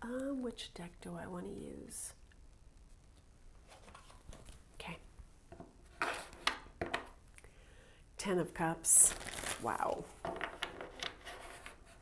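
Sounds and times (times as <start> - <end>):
cards rustling: 9.1 - 11.8.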